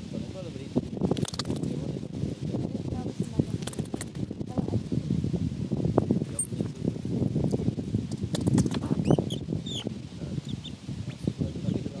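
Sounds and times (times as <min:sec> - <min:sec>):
animals scratching in sand: 0:00.2 - 0:12.0.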